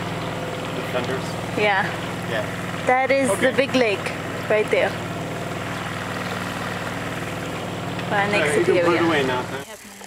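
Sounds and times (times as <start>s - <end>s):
boat motor droning: 0.0s - 10.0s.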